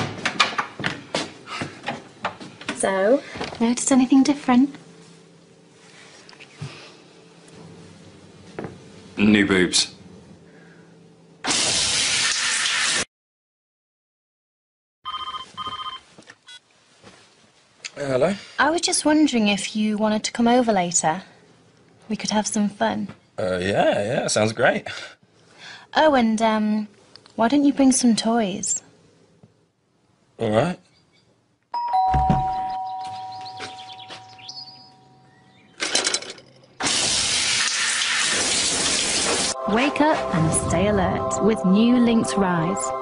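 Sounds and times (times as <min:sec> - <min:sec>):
shower running: 0:11.5 - 0:13.1, 0:36.8 - 0:39.6
telephone ringing: 0:15.1 - 0:16.1, 0:31.8 - 0:35.2
two-tone doorbell chime: 0:31.8 - 0:35.3.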